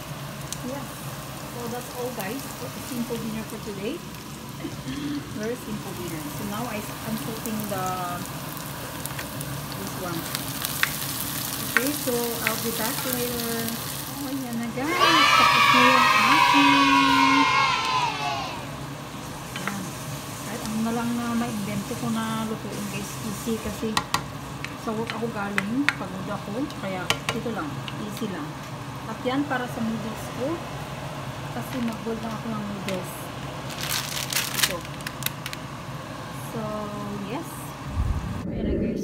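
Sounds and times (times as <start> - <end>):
food sizzling in a frying pan: 0.0 - 37.9
steady low hum: 17.2 - 39.0
plastic bag crackling: 33.5 - 35.7.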